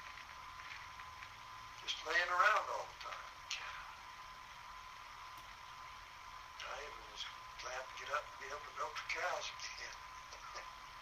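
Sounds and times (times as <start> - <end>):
low hum: 0.0 - 11.0
recording hiss: 0.0 - 11.0
thin steady whine: 0.0 - 11.0.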